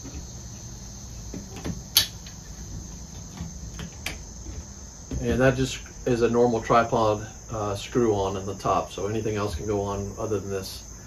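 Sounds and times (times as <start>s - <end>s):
high insect trill: 0.0s - 11.0s.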